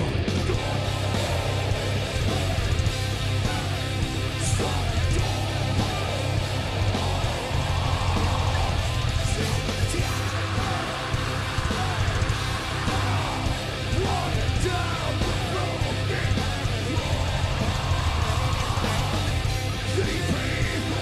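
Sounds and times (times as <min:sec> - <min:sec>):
harsh shouted vocal: 0:00.0 - 0:21.0
heavy metal band playing: 0:00.0 - 0:21.0.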